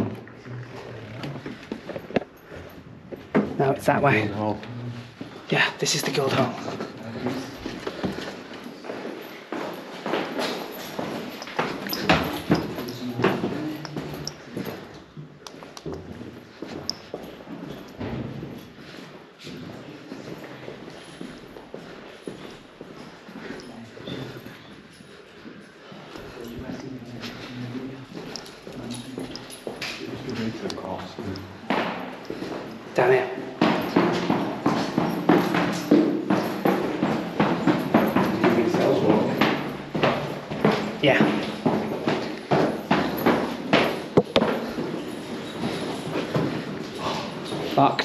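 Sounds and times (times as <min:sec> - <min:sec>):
indistinct low voices: 0:00.0 - 0:01.8
footsteps: 0:00.0 - 0:48.0.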